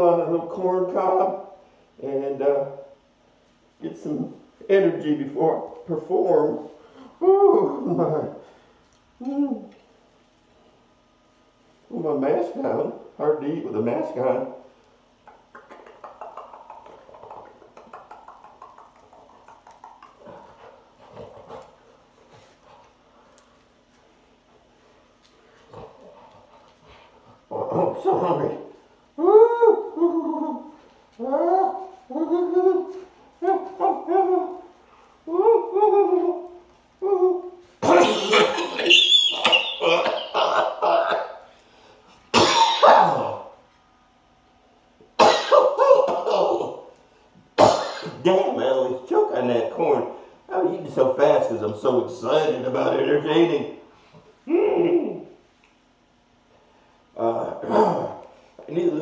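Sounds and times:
man coughing and choking: 37.8 - 41.4, 42.3 - 43.5, 45.2 - 46.7, 47.6 - 48.3, 57.6 - 58.2
short pitched vocal sounds: 57.2 - 58.4.

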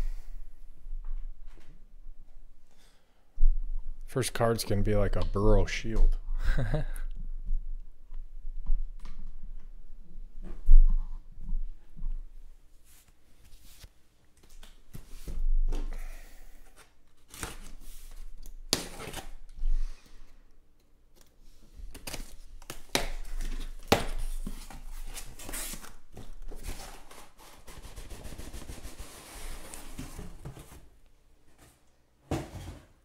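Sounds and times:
packing tape ripping: 17.2 - 17.8, 18.4 - 19.5
boxes knocking against cardboard: 32.2 - 33.0.

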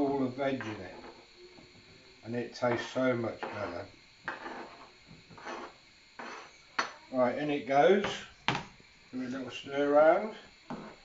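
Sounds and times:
spoon scraping a plate: 0.6 - 1.2, 2.7 - 6.7.

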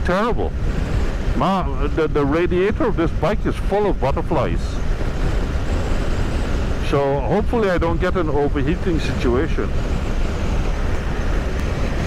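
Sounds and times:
wind rushing: 0.0 - 12.0.

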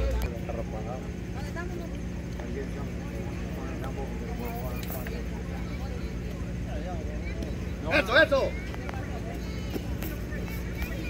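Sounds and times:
distant voices calling: 0.0 - 11.0
steady low hum: 0.0 - 11.0.

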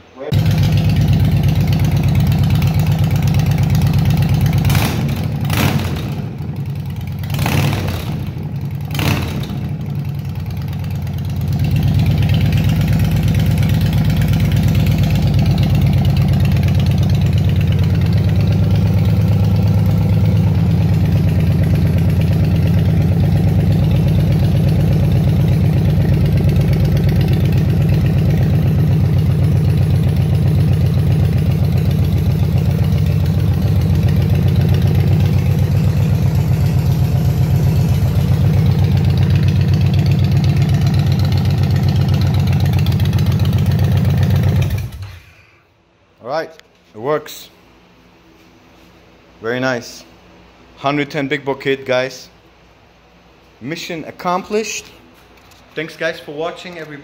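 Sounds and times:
motorcycle engine idling: 0.3 - 45.2.

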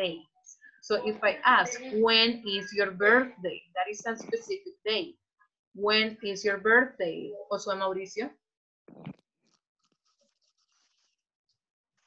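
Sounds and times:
person speaking: 0.0 - 5.1.

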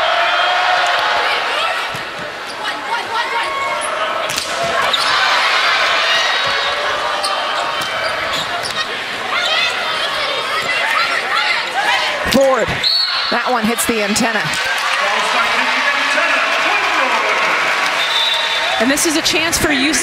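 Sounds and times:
crowd chatter: 0.0 - 20.0
sneakers squeaking on hardwood: 7.2 - 9.7.

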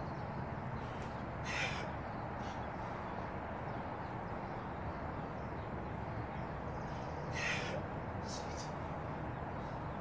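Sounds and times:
crow caw: 1.4 - 2.0, 7.3 - 7.8.

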